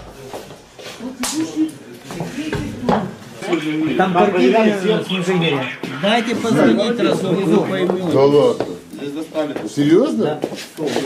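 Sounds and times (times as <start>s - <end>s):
men's voices: 1.5s - 11.0s.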